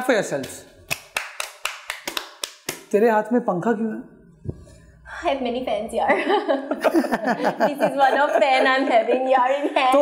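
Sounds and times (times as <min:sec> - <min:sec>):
hands clapping: 0:00.3 - 0:03.0.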